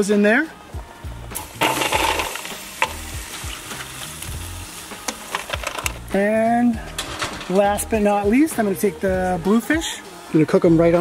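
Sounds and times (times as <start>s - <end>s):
steady crackling hiss: 0.0s - 11.0s
wood chips clattering into metal plate: 1.6s - 3.0s, 5.1s - 6.0s, 6.8s - 7.7s.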